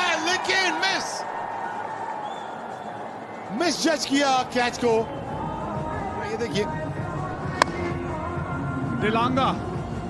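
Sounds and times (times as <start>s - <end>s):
stadium music: 0.0s - 10.0s.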